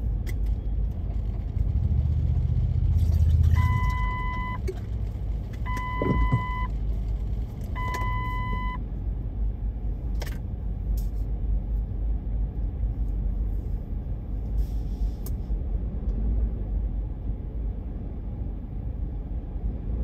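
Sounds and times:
heavy street traffic: 0.0 - 20.0
vehicle engine rumbling: 0.0 - 20.0
long electronic beeps: 3.6 - 4.6, 5.7 - 6.7, 7.8 - 8.8.

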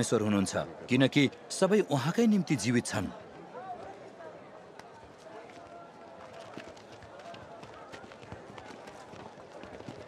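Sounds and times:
murmur of crowd voices: 0.0 - 10.0.

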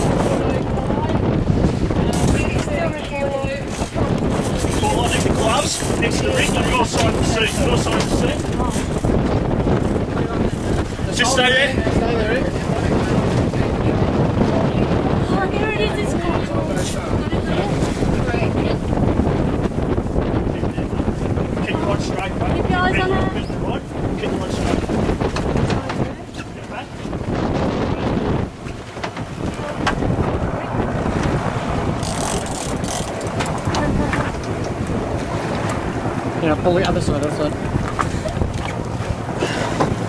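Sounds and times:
boat engine rumble: 0.0 - 40.0
water rushing along hull: 0.0 - 40.0
wind buffeting microphone: 0.0 - 40.0.

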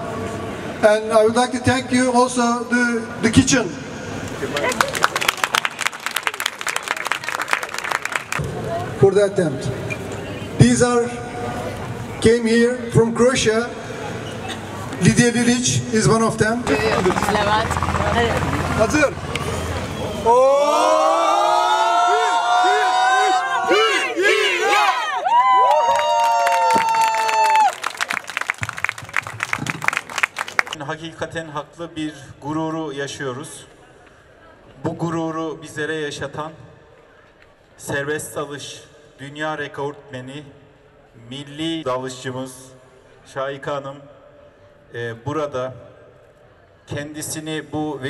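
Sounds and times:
audience applauding: 4.5 - 8.4, 25.4 - 30.8
group cheering and whooping: 19.9 - 28.1
hand clapping: 25.9 - 30.8.

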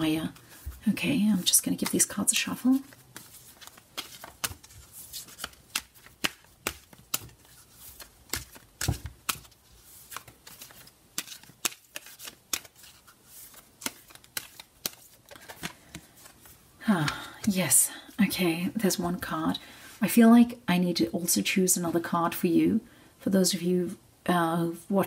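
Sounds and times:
cards being shuffled: 0.3 - 17.6.

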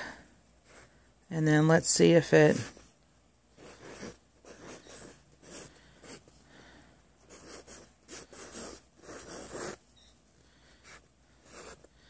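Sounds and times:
chalk scratching on chalkboard: 7.3 - 9.8.

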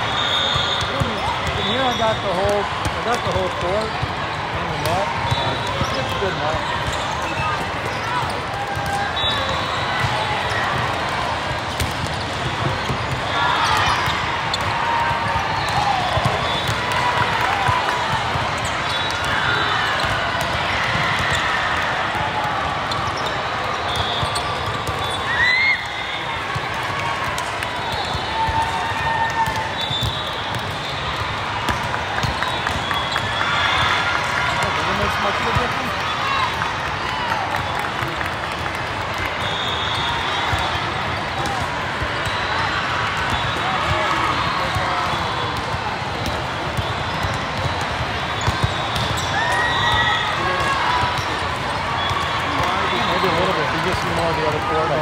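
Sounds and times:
short whistle blasts: 0.1 - 1.0
volleyballs struck and bouncing: 0.4 - 39.6, 40.3 - 55.0.

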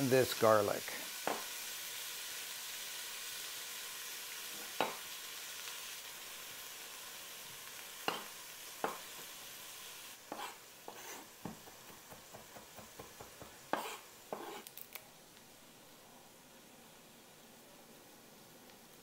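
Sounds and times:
onions sizzling in oil: 0.0 - 17.4.

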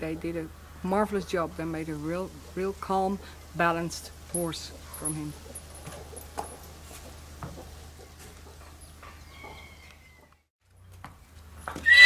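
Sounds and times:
horse whinnying loudly: 11.8 - 12.0.

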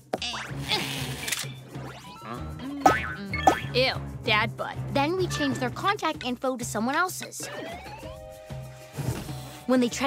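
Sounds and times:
cartoon music: 0.2 - 1.1, 1.7 - 6.2, 7.4 - 8.5
springy cartoon sound effects: 7.4 - 8.3.

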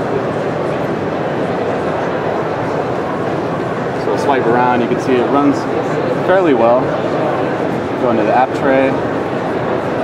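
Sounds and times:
crowd chatter: 0.0 - 10.0.

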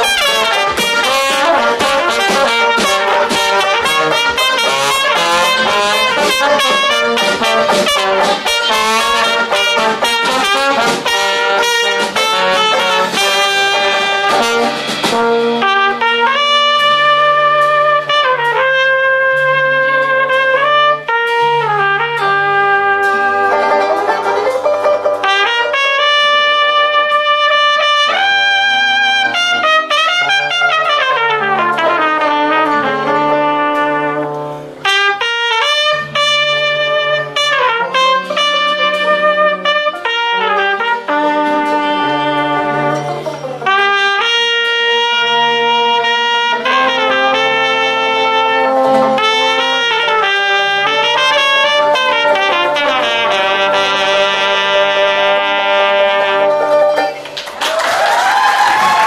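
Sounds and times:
trombone: 0.0 - 59.0
trumpet: 0.0 - 59.0.

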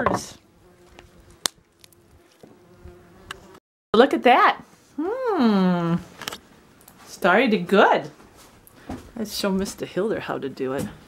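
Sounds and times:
flying insect buzzing: 0.3 - 3.6.

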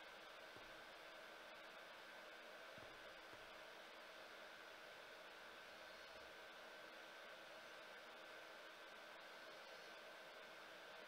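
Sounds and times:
faint hum tones: 0.0 - 11.0.

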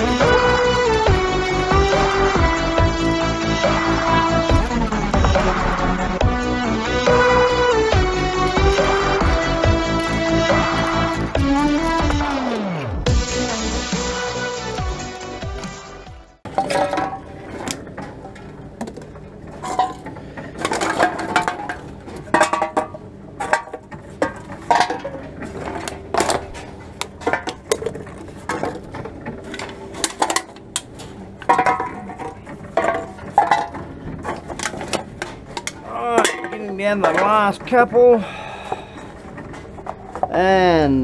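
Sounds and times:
cans and bottles clinking in trolley: 16.4 - 40.4.

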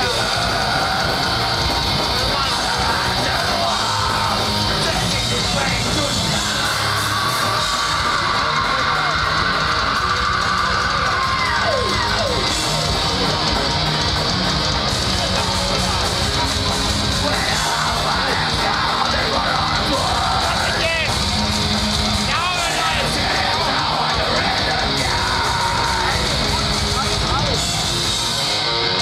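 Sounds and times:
yelled vocal: 0.0 - 28.1
distorted electric guitars: 0.0 - 29.0
fast drumming: 0.0 - 29.0
live metal band playing: 0.0 - 29.0.

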